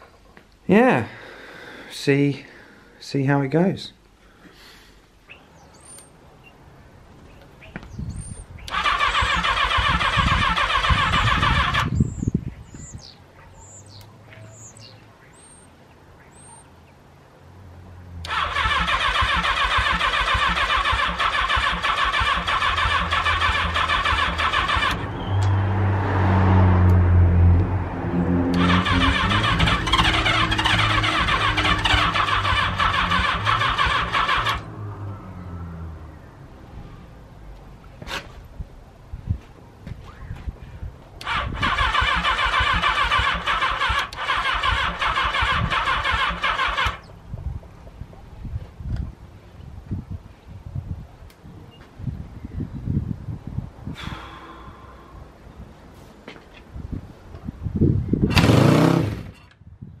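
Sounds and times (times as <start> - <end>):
electric starter cranking engine: 8.7 - 11.9, 18.2 - 25.0, 28.5 - 34.7, 41.2 - 47.0, 58.3 - 59.3
motorcycle engine running: 28.3 - 34.7.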